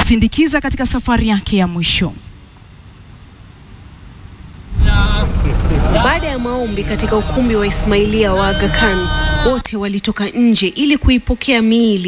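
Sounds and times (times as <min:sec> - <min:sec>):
heavy low rumble: 0:04.6 - 0:09.7
crowd voices: 0:04.7 - 0:09.6.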